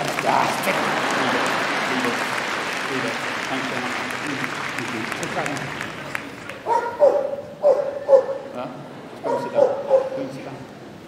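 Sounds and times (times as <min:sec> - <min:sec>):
indoor arena hum: 0:00.0 - 0:11.0
dog barking: 0:06.6 - 0:08.4, 0:09.2 - 0:10.2.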